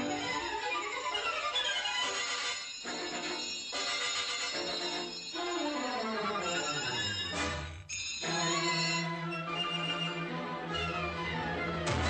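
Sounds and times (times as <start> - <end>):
orchestral music: 0.0 - 1.6, 8.4 - 12.0.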